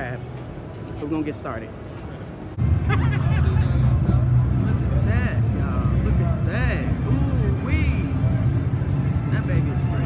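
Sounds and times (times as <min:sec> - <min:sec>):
steady low hum: 0:01.7 - 0:10.0.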